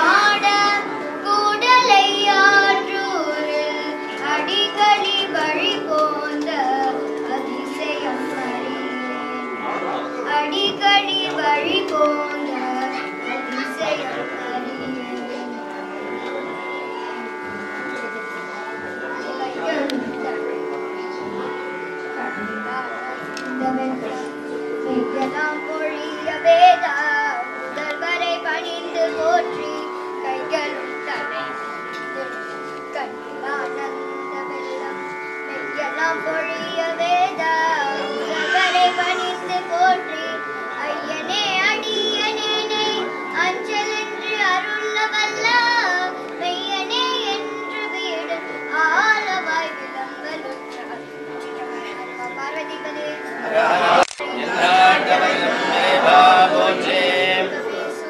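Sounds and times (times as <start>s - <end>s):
girl singing a hymn: 0.0s - 15.8s, 22.2s - 31.6s, 32.9s - 53.5s, 54.5s - 58.0s
steady drone: 0.0s - 58.0s.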